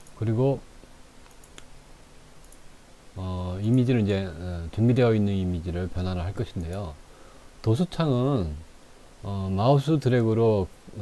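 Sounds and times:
computer mouse clicks: 1.2 - 1.7, 2.4 - 2.6, 6.6 - 6.8.

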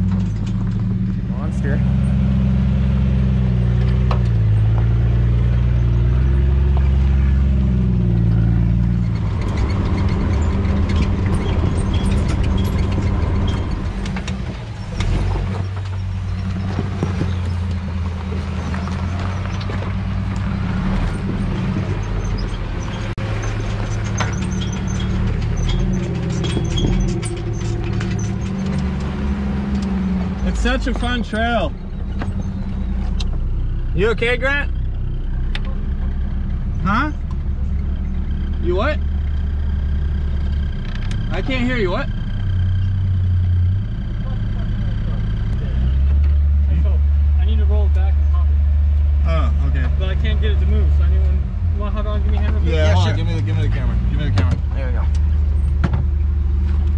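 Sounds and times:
off-road engine at low revs: 0.0 - 56.9
rock crunching under tyres: 9.0 - 31.2.

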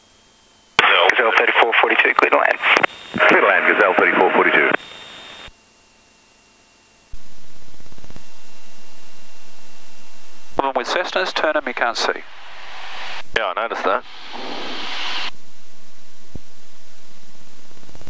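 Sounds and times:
radio voice: 0.8 - 4.8, 10.6 - 12.4, 13.3 - 14.1
steady loud sound: 7.2 - 17.7.

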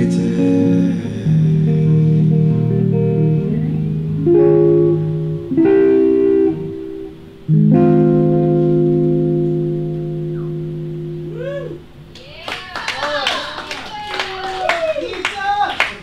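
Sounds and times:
electric guitar chord ringing: 0.0 - 12.2
audience clapping: 12.1 - 16.0.

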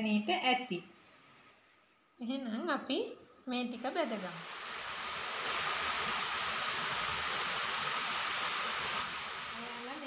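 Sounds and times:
oil sizzling: 3.6 - 10.0.

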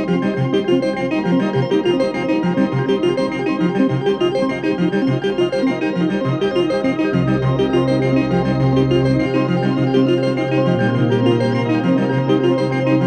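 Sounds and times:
fast repeating synthesizer notes: 0.0 - 13.0.

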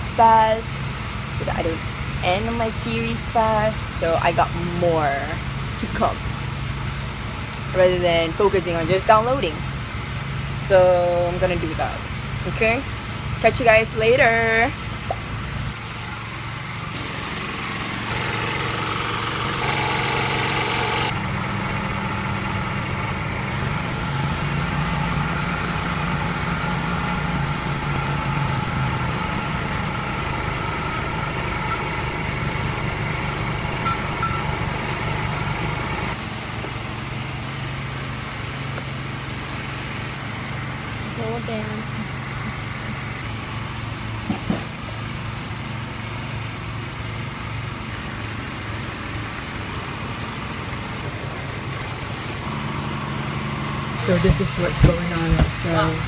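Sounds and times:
petrol engine driving air compressor: 15.5 - 56.0.

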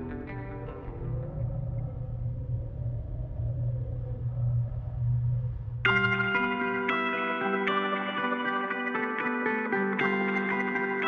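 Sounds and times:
deep low rumbling drone: 0.0 - 7.0
faint wavering high tone: 0.0 - 8.2.

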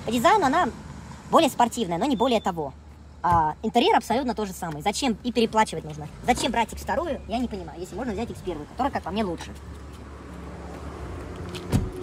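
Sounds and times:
car door shutting: 11.5 - 12.0.

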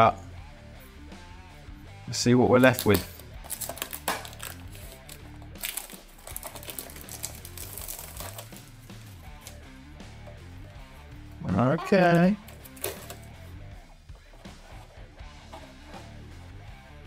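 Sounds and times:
background music: 0.0 - 17.0
plastic film crinkling: 2.6 - 9.6.

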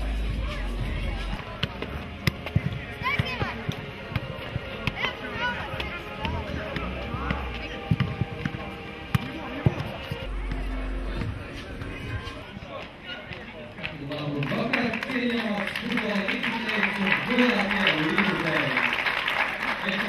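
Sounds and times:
music: 0.0 - 12.5
football being kicked: 1.4 - 12.0.

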